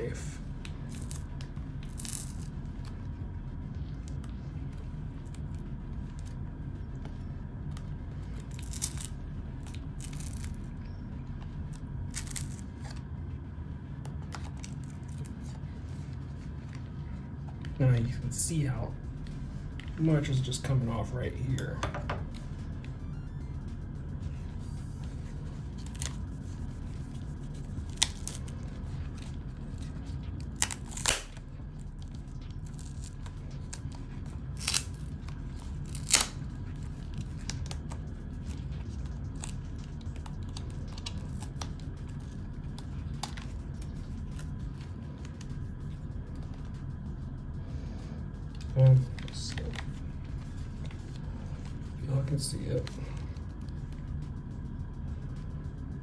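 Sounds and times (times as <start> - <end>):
steady low hum: 0.0 - 56.0
ear pad scraping and tearing: 4.0 - 13.2, 25.0 - 45.5
ear pad tearing away: 29.1 - 31.4, 32.6 - 36.5.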